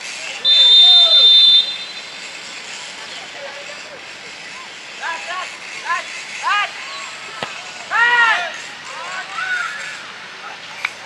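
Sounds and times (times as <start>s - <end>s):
players shouting: 0.4s - 2.2s, 5.1s - 10.7s
referee whistle blast: 0.4s - 2.2s.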